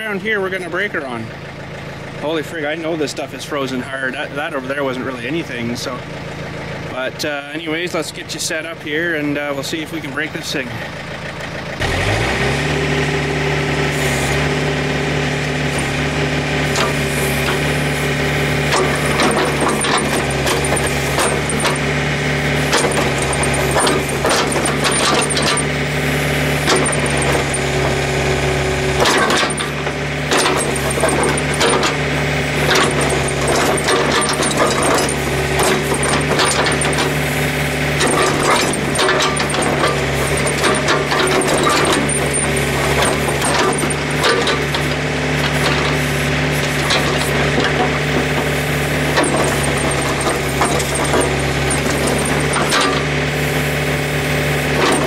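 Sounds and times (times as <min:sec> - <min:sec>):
diesel engine at high revs: 0:00.0 - 0:55.0.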